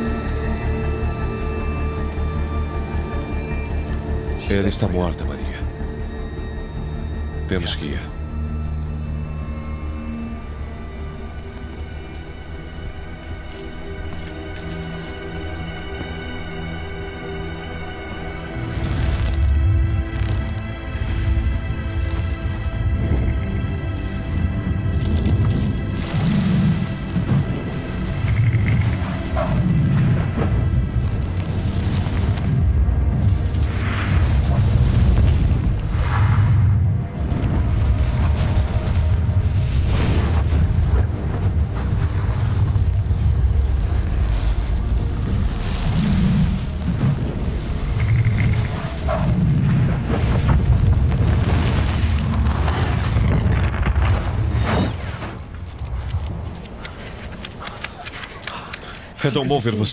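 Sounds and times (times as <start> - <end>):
dramatic orchestral film score: 0.0 - 59.9.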